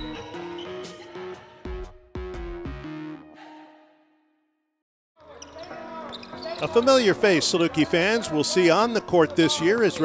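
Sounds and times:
background music: 0.0 - 4.1.

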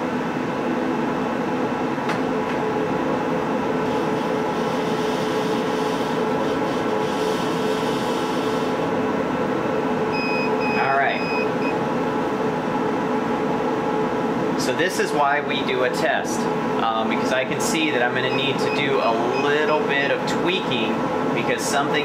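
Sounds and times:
machines humming: 0.0 - 22.0.

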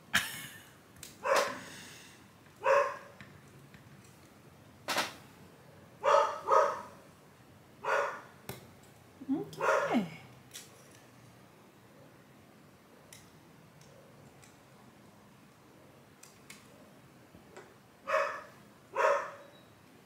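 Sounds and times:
dog barking: 1.2 - 1.6, 2.6 - 3.1, 6.0 - 7.0, 7.8 - 8.3, 9.6 - 10.1, 18.1 - 19.5.

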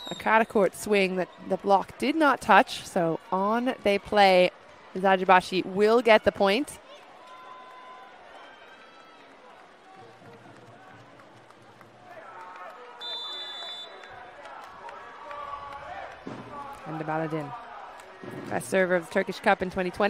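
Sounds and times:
referee's whistle: 0.0 - 0.7, 13.0 - 14.2.

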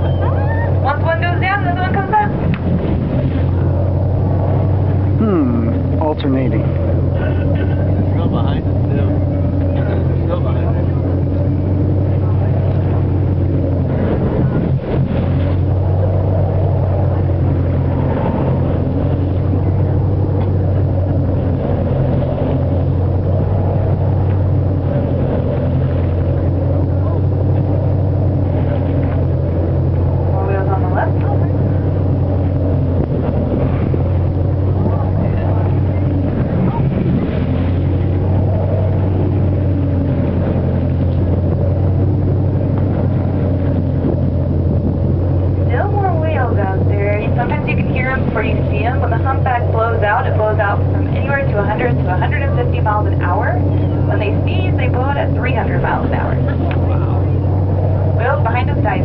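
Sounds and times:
boat engine droning: 0.0 - 59.0
indistinct voices: 5.2 - 6.6, 45.6 - 59.0.

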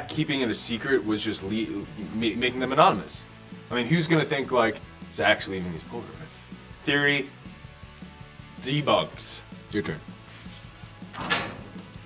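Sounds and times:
faint background music: 0.0 - 12.0
paper card scraping off metal locker: 10.5 - 12.0.

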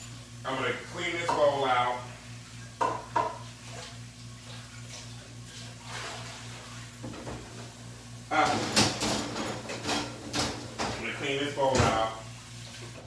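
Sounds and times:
kitchenware clinking: 8.4 - 11.1
kitchenware scraping and knocking: 8.4 - 11.1.

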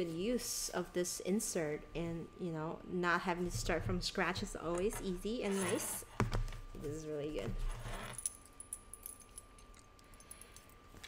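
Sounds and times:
light metallic clicks and jingles: 8.2 - 11.0.

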